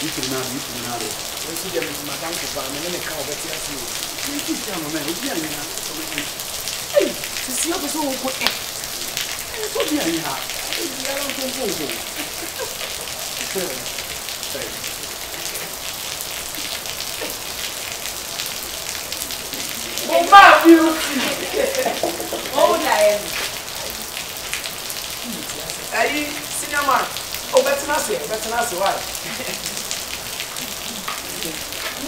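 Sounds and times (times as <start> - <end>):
heavy rain falling: 0.0 - 32.0.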